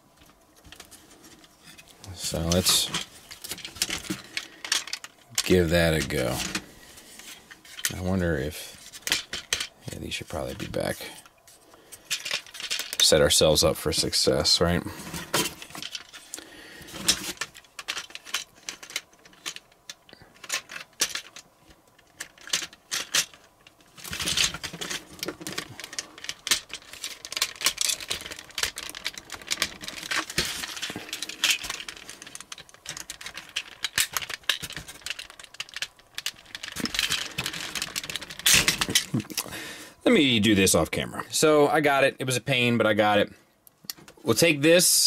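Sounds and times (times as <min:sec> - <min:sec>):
plastic toy parts clicking: 0:17.0 - 0:39.5.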